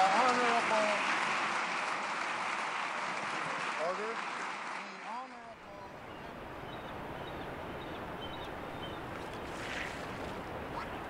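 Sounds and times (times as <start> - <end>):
crowd applauding: 0.0 - 6.8
voices calling out: 4.8 - 11.0.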